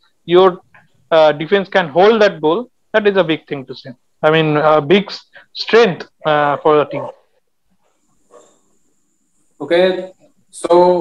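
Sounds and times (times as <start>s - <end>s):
man talking over video call: 0.2s - 7.3s.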